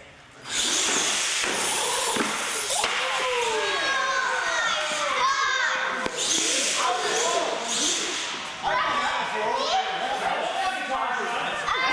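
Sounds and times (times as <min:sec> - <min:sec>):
toy truck motors whining: 0:00.4 - 0:05.0, 0:06.0 - 0:08.6
tyres hissing on concrete: 0:00.6 - 0:05.0.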